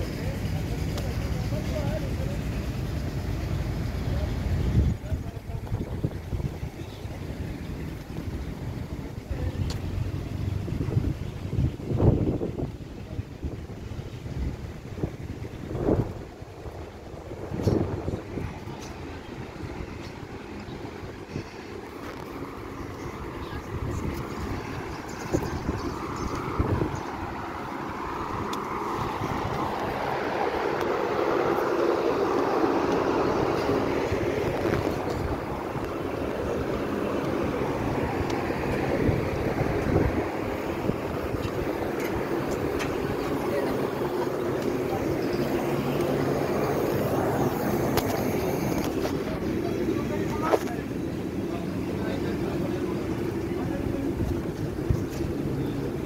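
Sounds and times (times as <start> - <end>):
background murmur: 0.0 - 56.0
wind buffeting microphone: 0.0 - 56.0.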